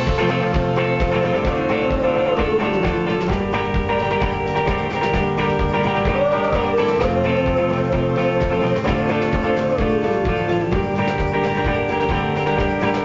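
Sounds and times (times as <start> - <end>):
drum kit beat: 0.0 - 13.0
electric guitar strummed: 0.0 - 13.0.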